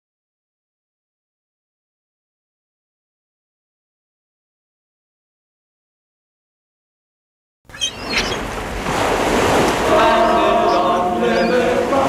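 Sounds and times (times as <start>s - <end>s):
water lapping: 7.7s - 12.0s
wind rumbling on microphone: 7.8s - 12.0s.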